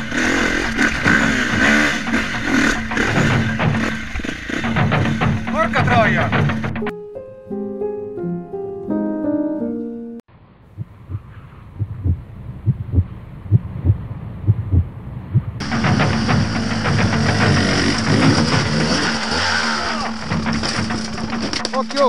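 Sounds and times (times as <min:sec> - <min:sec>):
dirt bike engine running: 0:00.0 - 0:06.9, 0:11.2 - 0:22.0
background music: 0:00.2 - 0:10.2, 0:15.6 - 0:22.0
dull irregular thumps: 0:00.6 - 0:06.9, 0:10.8 - 0:22.0.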